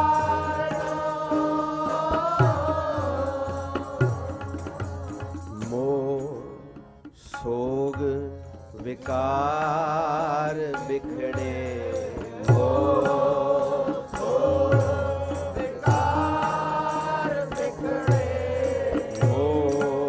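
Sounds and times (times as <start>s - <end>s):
harmonium drone: 0.0s - 7.0s, 7.8s - 20.0s
devotional singing: 0.0s - 20.0s
tabla strokes: 0.0s - 20.0s.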